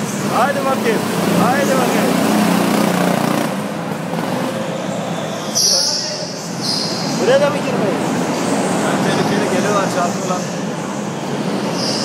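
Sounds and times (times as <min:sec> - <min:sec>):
go-kart motor drone: 0:00.3 - 0:04.8.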